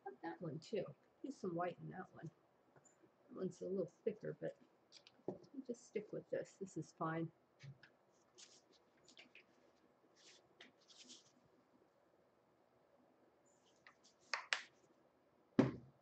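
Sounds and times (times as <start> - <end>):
soft handling rustles: 7.6 - 11.6
knock: 15.6 - 15.9.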